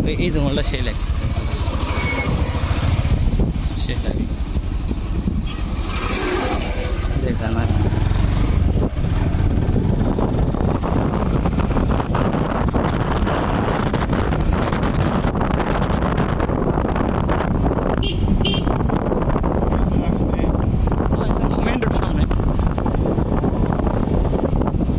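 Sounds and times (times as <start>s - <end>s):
rickshaw van rumbling on road: 0.0s - 24.9s.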